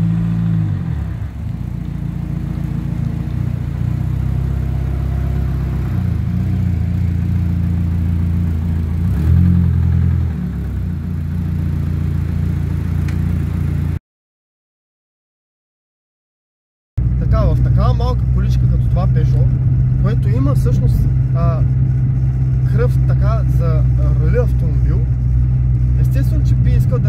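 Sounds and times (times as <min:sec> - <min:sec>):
car engine running at low revs: 0:00.0 - 0:14.0, 0:17.0 - 0:27.0.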